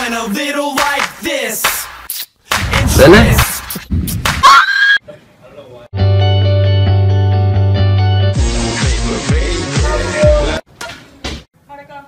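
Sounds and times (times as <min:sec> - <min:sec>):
held musical chord with bass: 0:06.0 - 0:10.6.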